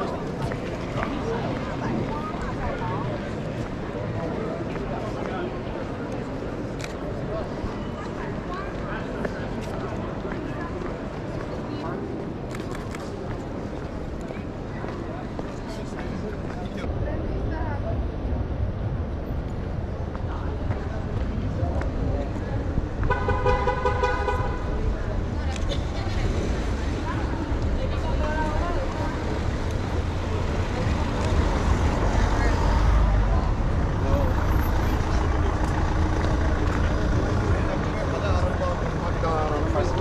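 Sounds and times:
crowd of voices: 0.0s - 40.0s
low traffic rumble: 0.0s - 40.0s
vehicle horn: 23.0s - 24.7s.

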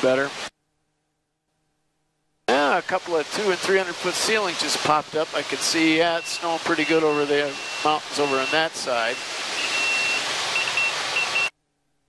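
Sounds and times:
high-pitched electronic beeps: 6.0s - 11.5s.

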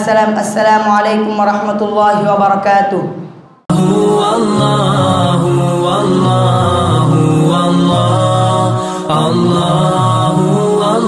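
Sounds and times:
chanted vocals music: 3.7s - 11.0s.

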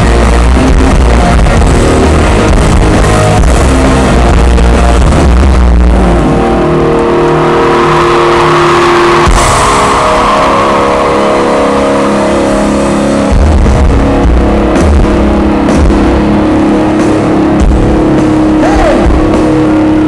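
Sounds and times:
loud live rock band: 0.0s - 20.0s.

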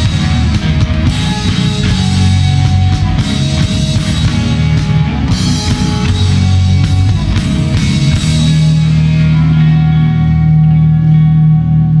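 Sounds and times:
distorted electric guitars and bass: 0.0s - 12.0s
drums: 0.0s - 12.0s.

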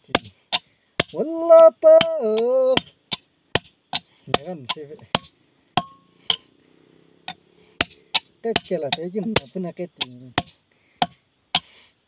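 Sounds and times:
hammer striking steel chisel: 0.1s - 1.2s, 2.0s - 6.5s, 7.3s - 11.7s
metallic ringing tone: 5.8s - 6.5s.

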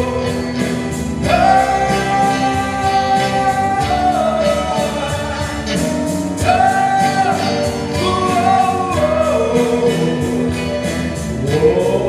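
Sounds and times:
bass: 0.0s - 12.0s
drums: 0.0s - 12.0s
electric guitar: 0.0s - 12.0s
keyboard: 0.0s - 12.0s.

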